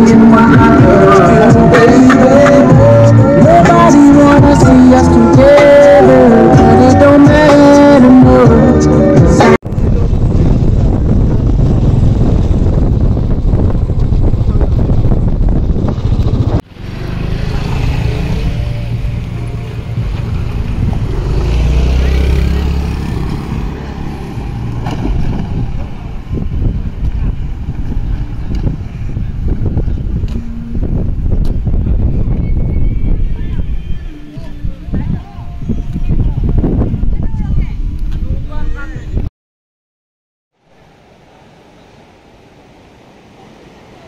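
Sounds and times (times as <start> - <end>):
wind and road noise in vehicle: 0.0 - 39.3, 40.6 - 44.0
wind rumble on microphone: 0.0 - 39.3.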